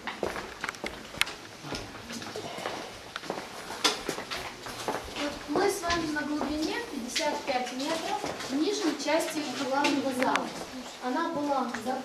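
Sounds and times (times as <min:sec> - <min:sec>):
low voices: 0:01.6 - 0:03.1.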